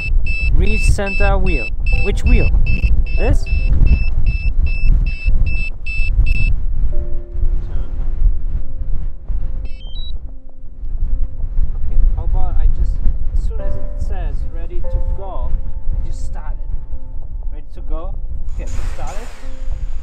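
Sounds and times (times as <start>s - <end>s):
rising two-note chirp: 0.0s - 4.4s, 9.6s - 10.2s
remote controller beeping rapidly: 0.0s - 6.5s
wind buffeting microphone: 0.0s - 20.0s.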